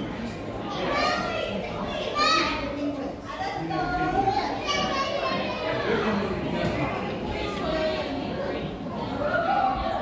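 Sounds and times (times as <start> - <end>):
children calling out and chattering: 0.0 - 10.0.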